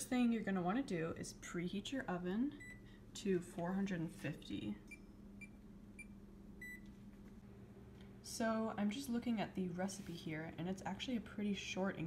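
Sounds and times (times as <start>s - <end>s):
oven keypad beeping: 2.6s - 2.8s, 4.9s - 6.9s.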